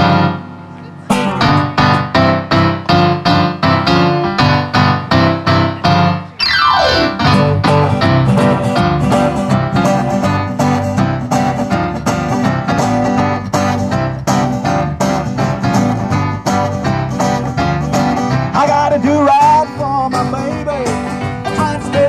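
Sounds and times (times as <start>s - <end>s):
acoustic guitars: 0.0s - 22.0s
band playing up-tempo: 0.0s - 22.0s
stage piano chords: 0.0s - 22.0s.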